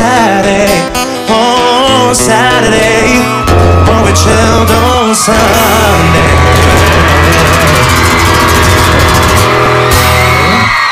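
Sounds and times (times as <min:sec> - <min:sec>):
loud live band music: 0:00.0 - 0:10.9.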